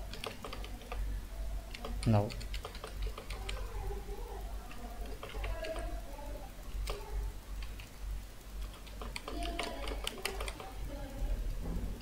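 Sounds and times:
computer keyboard typing: 0.0 - 11.0
low steady hum: 0.0 - 12.0.

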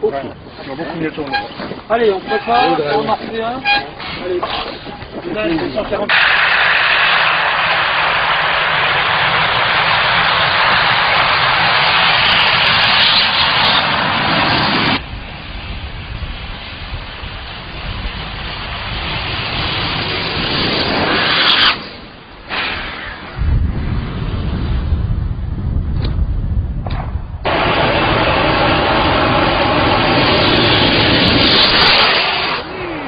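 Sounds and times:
rushing noise: 0.6 - 33.0
rocket engine hissing roar: 6.1 - 24.6, 27.5 - 33.0.

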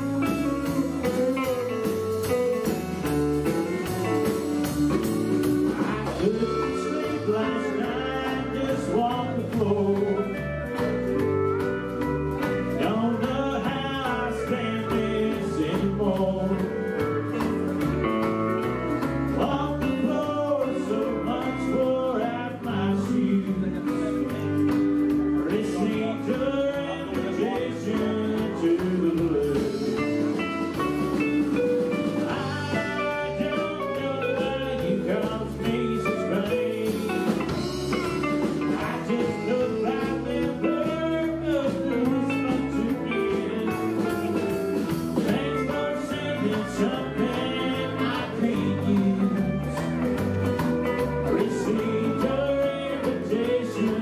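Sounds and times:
bass guitar: 0.0 - 54.0
country band playing: 0.0 - 54.0
drums: 0.0 - 54.0
electric guitars: 0.0 - 54.0
singer's voice: 0.0 - 54.0
steel guitar: 0.0 - 54.0.

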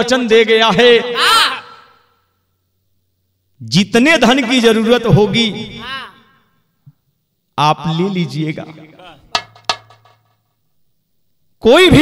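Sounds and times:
man's drawn-out syllable: 1.2 - 1.9, 5.7 - 6.2.

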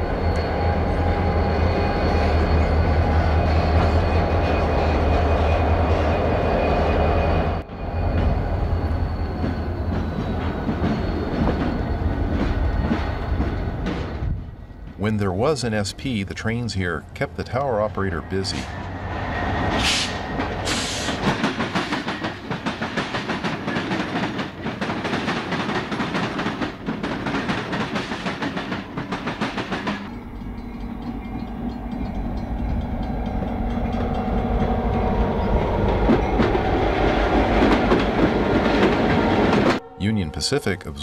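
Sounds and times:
diesel locomotive engine drone: 0.0 - 41.0
train wheels clattering over crossing: 18.5 - 39.8.

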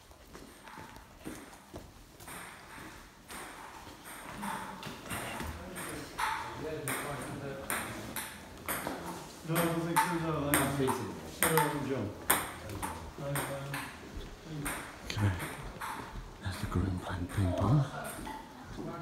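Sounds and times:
footsteps on hard floors: 0.0 - 6.2, 13.9 - 16.8.

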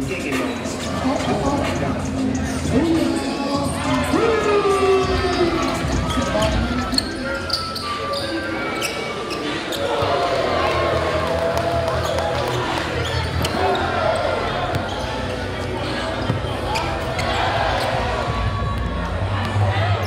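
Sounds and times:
voices of players and spectators: 0.0 - 20.0.

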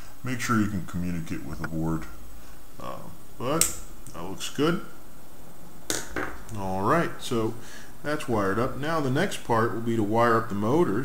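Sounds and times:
man speaking: 0.2 - 2.2, 2.8 - 5.0, 6.5 - 11.0.

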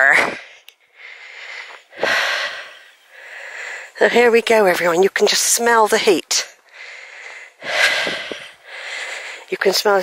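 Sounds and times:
woman breathing heavily: 0.2 - 4.3, 6.5 - 9.6.

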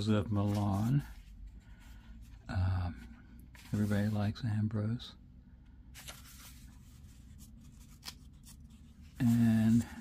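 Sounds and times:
thin paper pages rustling: 0.3 - 1.5, 6.0 - 10.0.

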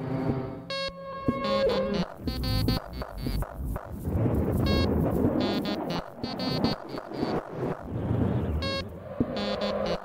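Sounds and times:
buzzy electronic beeps: 0.7 - 4.0, 4.6 - 10.0.

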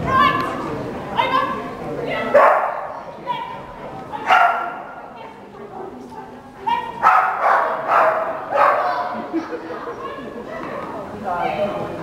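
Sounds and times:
dog barking: 2.3 - 3.0, 4.2 - 5.0, 7.0 - 9.1.

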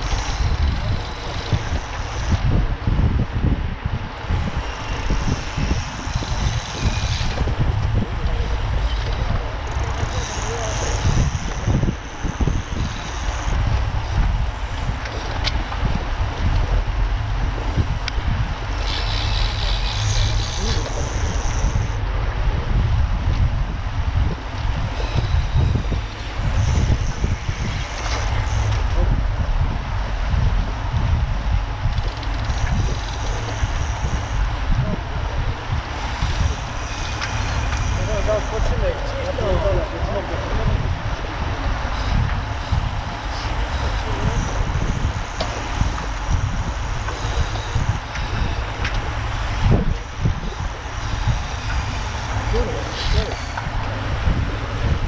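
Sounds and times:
bicycle tyre and road noise: 0.0 - 55.0
wind rumbling on microphone: 0.0 - 55.0.

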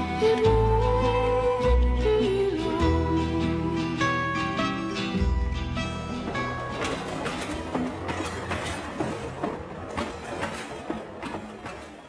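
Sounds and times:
train carriage rumbling on rails: 5.1 - 12.0
wheels clicking and knocking: 5.8 - 12.0.

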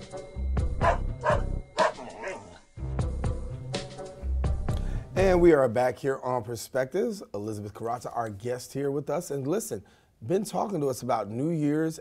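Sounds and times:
dog barking: 0.8 - 2.6
upbeat music with bass beat: 2.8 - 5.4.

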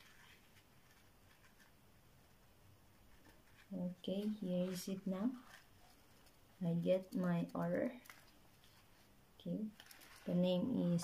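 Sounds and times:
paper packet rustling: 0.0 - 1.8, 3.1 - 9.1, 9.7 - 11.0.

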